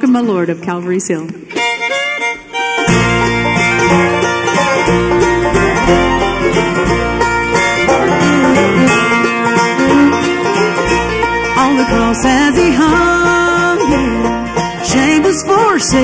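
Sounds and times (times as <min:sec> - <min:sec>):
bluegrass band playing: 0:01.5 - 0:16.0.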